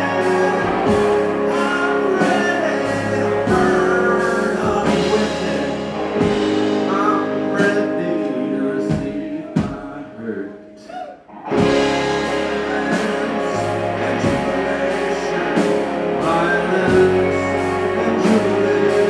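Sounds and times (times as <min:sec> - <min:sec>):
electric guitar: 0:00.0 - 0:19.0
live rock band: 0:00.0 - 0:19.0
person singing lead vocal: 0:00.0 - 0:19.0.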